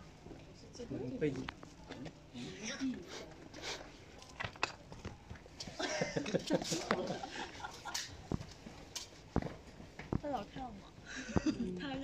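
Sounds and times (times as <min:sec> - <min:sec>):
people talking quietly: 0:00.0 - 0:12.0.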